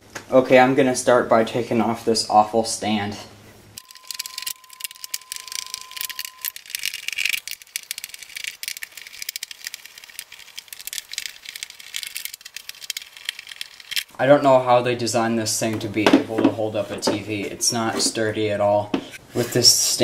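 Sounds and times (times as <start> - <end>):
faint steady tone: 3.8 - 6.6
screwdriver clicking on metal screws: 3.8 - 14.1.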